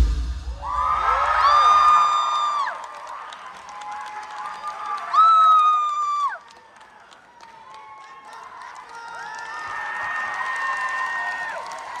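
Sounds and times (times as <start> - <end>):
audience cheering and clapping: 0.5 - 12.0
shrill screams: 0.6 - 2.8.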